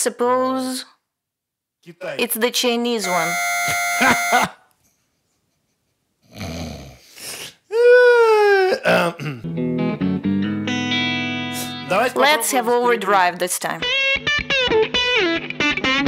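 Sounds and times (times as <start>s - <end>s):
clean electric guitar: 9.3s - 12.1s, 13.8s - 16.0s.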